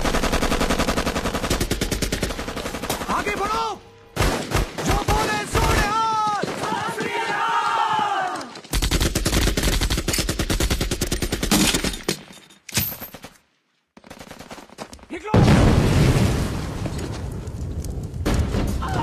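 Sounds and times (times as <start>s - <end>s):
rapid machine-gun fire: 0.0s - 3.4s, 8.7s - 11.6s
gunshots: 4.2s - 7.4s
men shouting: 5.0s - 8.5s.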